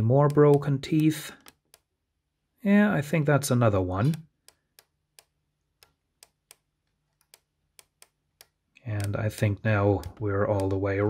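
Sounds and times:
plastic gear clicks: 0:07.2 - 0:11.0.

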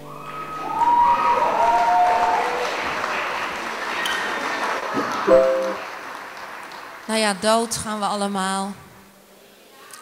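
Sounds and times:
high cheers: 0:00.0 - 0:05.9
audience applauding: 0:00.1 - 0:07.5.

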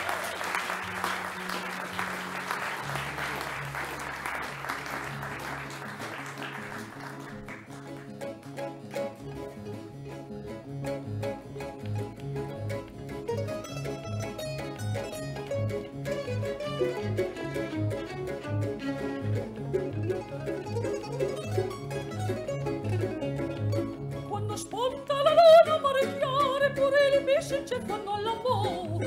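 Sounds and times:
mandolins and guitar plucking: 0:00.9 - 0:29.0
violins playing melody: 0:06.0 - 0:29.0.

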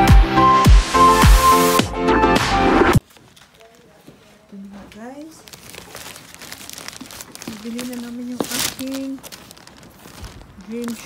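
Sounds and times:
plastic bag rustling: 0:03.0 - 0:11.0.

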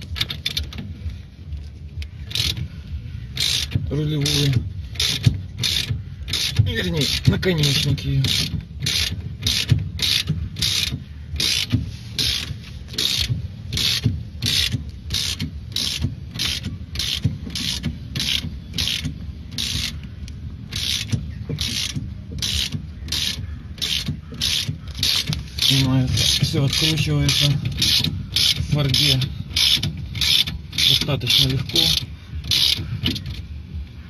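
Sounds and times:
socket ratchet wrench clicking: 0:02.2 - 0:02.7, 0:03.3 - 0:33.5.

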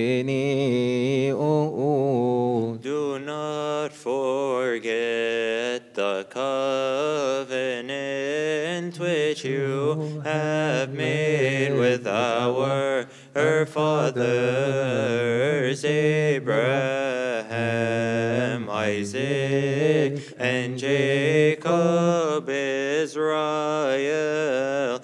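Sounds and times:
men chanting a hymn: 0:00.0 - 0:25.0.

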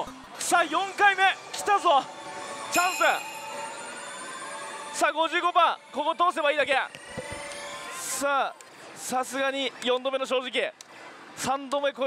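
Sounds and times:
bright electronic ringing tone: 0:01.4 - 0:08.5.

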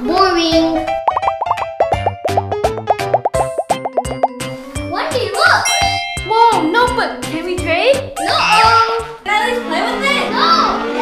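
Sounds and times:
upbeat children's music: 0:00.1 - 0:09.5
cartoon bubble pops: 0:01.1 - 0:04.4.

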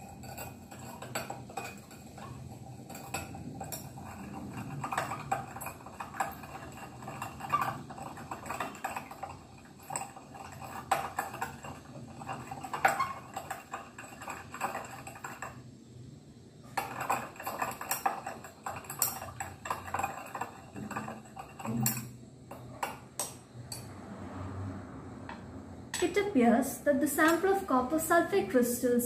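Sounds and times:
glass rod clinking against beaker: 0:16.8 - 0:22.1.

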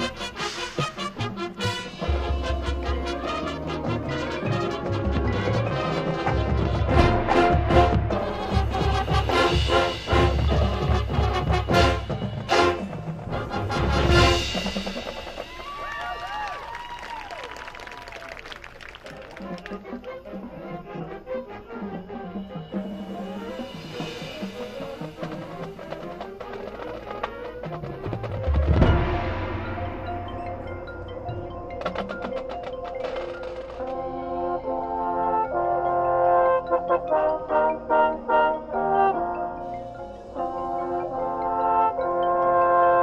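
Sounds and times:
marching band playing: 0:00.0 - 0:43.0.

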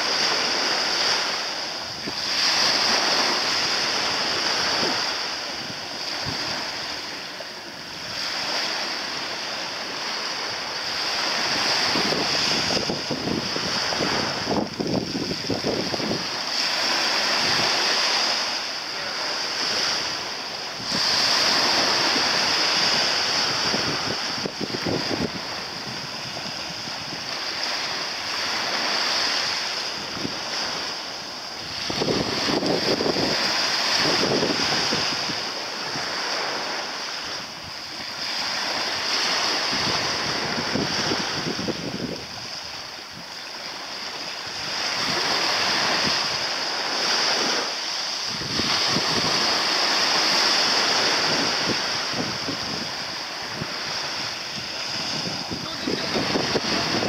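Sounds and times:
shallow sea water lapping: 0:00.0 - 0:57.0
wind buffeting microphone: 0:00.0 - 0:57.0.

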